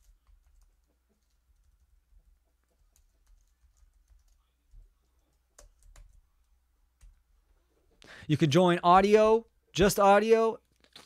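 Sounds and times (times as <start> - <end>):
typing on computer keyboard: 0.0 - 7.2.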